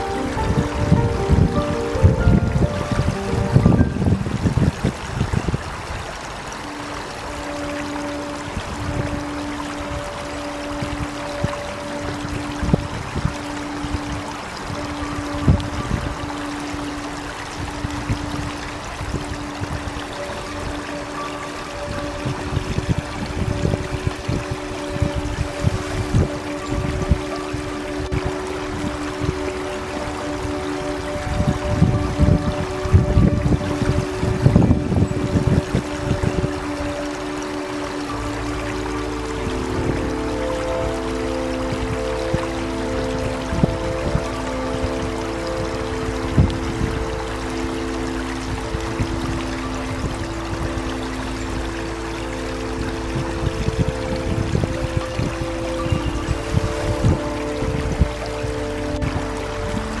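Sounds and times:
slow relaxation music: 0:00.0 - 1:00.0
stream water flowing: 0:00.0 - 1:00.0.

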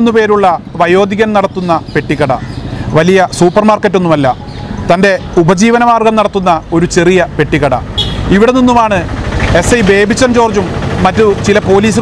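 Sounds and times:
man talking: 0:00.0 - 0:12.0
vehicle engine running: 0:00.0 - 0:12.0.

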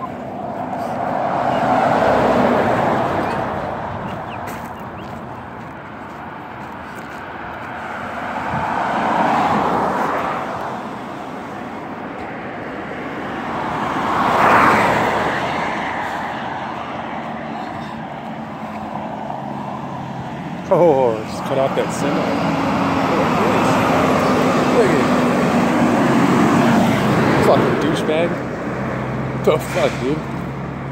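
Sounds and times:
vehicles passing: 0:00.0 - 0:30.9.

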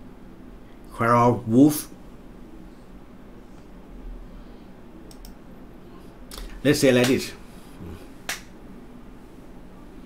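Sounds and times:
faint low hum: 0:00.0 - 0:10.0
sharp click: 0:05.1 - 0:05.4.

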